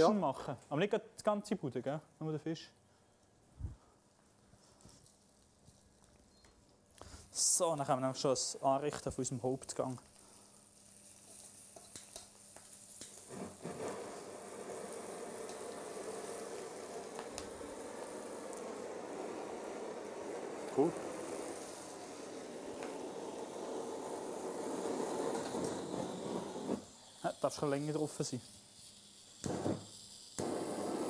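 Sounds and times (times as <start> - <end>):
blowtorch lighting: 5.0 - 31.0
blowtorch hissing: 9.8 - 31.0.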